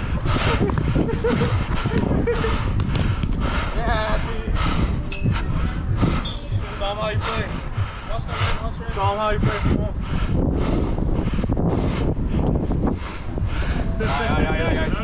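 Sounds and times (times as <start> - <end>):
running footsteps: 0.0 - 15.0
steady low rumble: 0.0 - 15.0.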